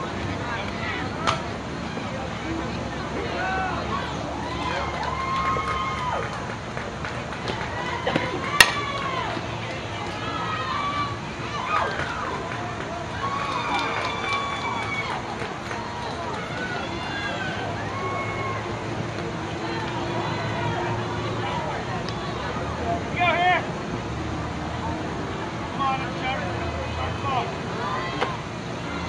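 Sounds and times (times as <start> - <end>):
voices calling out and shouting: 0.0 - 6.6, 7.4 - 29.0
crowd chatter: 0.0 - 29.0.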